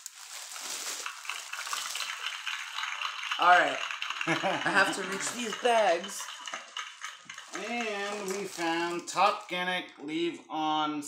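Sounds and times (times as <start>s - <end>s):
cellophane bag crinkling: 0.0s - 4.3s, 6.3s - 9.6s.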